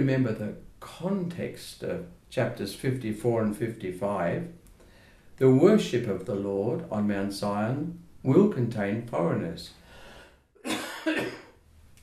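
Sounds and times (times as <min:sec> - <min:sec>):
man coughing: 0:10.6 - 0:11.6.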